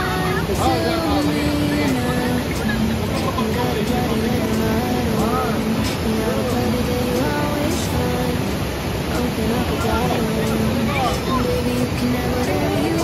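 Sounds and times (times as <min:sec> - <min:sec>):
background music: 0:00.0 - 0:13.0
river rapids rushing: 0:00.0 - 0:13.0
voices: 0:00.0 - 0:13.0.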